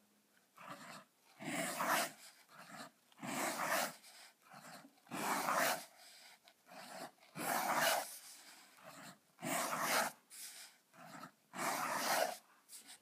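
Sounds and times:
fountain pen scratching on paper: 0.6s - 13.0s.

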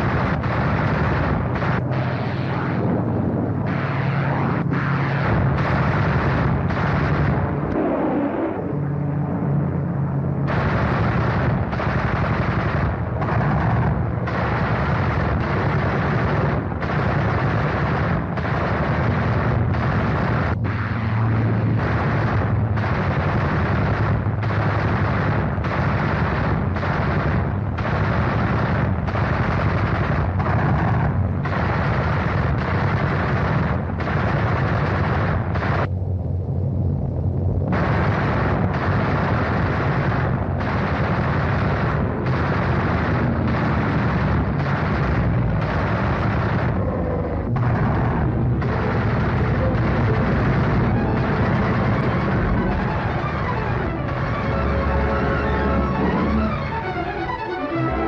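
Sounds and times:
cannon and machine-gun fire: 0.0s - 9.6s, 10.2s - 35.9s, 37.7s - 58.0s
aircraft engine drone: 0.0s - 58.0s.

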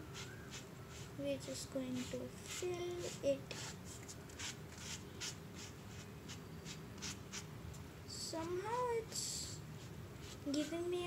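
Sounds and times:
cardboard scraping paint on paper: 0.2s - 7.5s, 8.4s - 11.0s.

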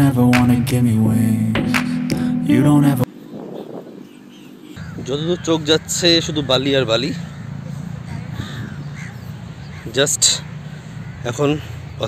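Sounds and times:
crow cawing: 4.3s - 11.8s.

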